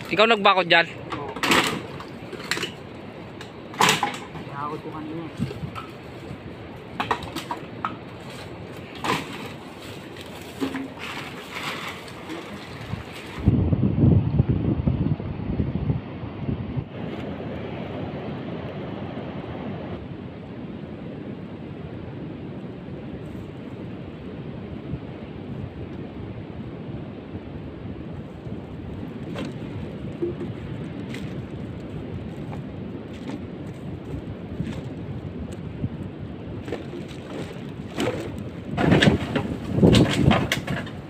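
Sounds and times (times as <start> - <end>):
surf: 0.0 - 13.6
wind buffeting microphone: 0.0 - 41.0.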